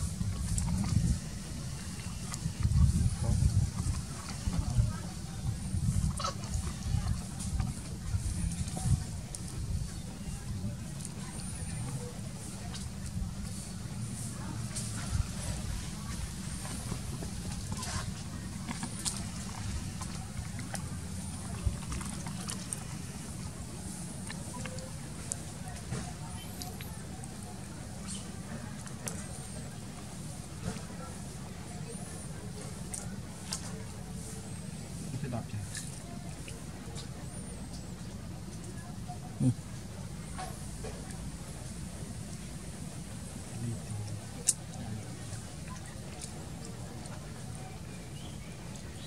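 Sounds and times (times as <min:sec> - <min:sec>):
faint voices: 0:00.0 - 0:49.0
low rumble on microphone: 0:00.0 - 0:49.0.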